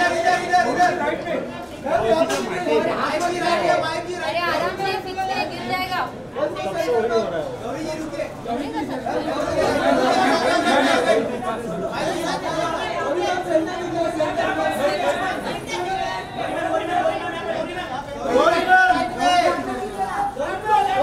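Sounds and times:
crowd voices calling out: 0.0s - 21.0s.

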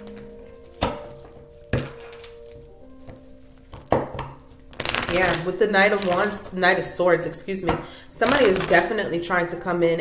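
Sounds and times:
soft background music: 0.0s - 10.0s
cards snapping: 4.6s - 6.3s.

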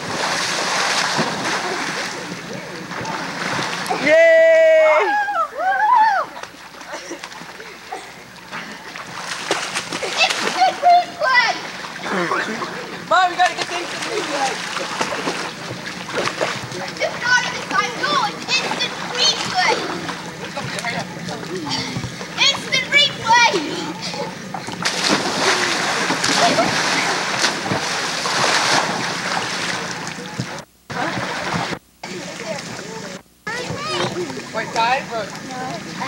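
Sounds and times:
person splashing into pool: 0.0s - 2.3s, 24.8s - 30.2s
water splashing: 0.0s - 4.1s, 6.3s - 36.0s.

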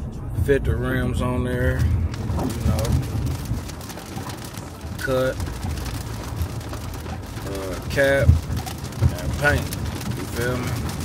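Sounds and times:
car rumble on the move: 0.0s - 11.0s
raindrops pattering on car: 1.4s - 11.0s.

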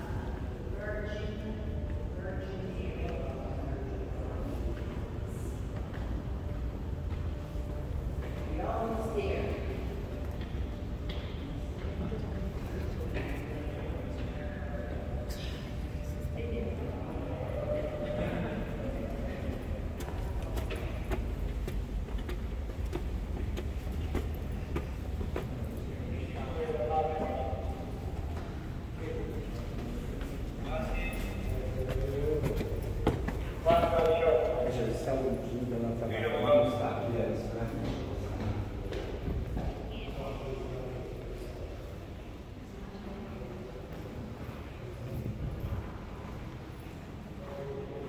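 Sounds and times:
indistinct voices: 0.0s - 48.0s
footsteps on stone stairs: 19.9s - 25.8s, 31.8s - 34.1s.

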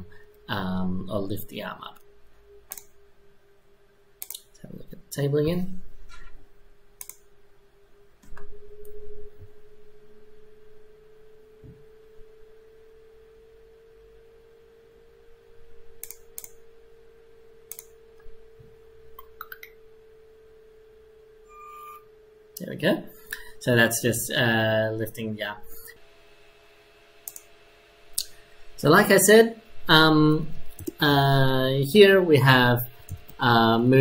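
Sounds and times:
faint high hum: 0.0s - 34.0s
sharp clicks: 2.7s - 2.9s, 4.2s - 4.5s, 7.0s - 7.2s, 16.0s - 16.6s, 17.7s - 17.9s, 27.2s - 27.5s, 30.7s - 31.0s.

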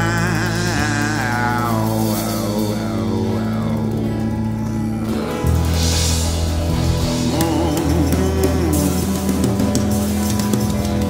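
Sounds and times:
bending guitar lead line: 0.0s - 11.0s
live rock band playing: 0.0s - 11.0s.

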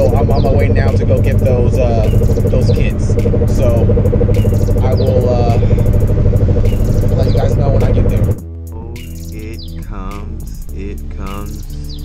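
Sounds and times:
engine and road drone in car: 0.0s - 8.4s.

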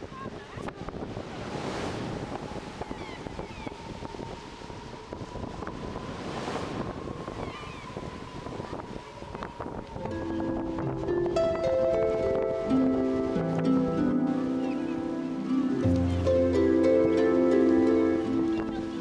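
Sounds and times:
wind on microphone: 0.0s - 19.0s
surf breaking: 0.2s - 3.3s, 5.4s - 7.6s
music: 10.1s - 19.0s.

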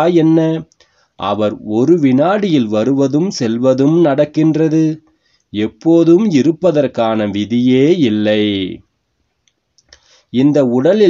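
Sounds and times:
man speaking: 10.4s - 11.0s.

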